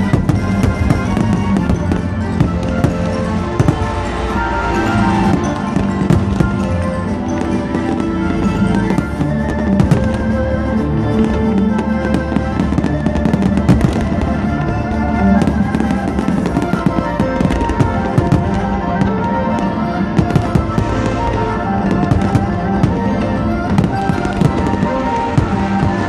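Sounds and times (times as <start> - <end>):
fireworks bangs and crackles: 0.0 - 26.0
music playing: 0.0 - 26.0.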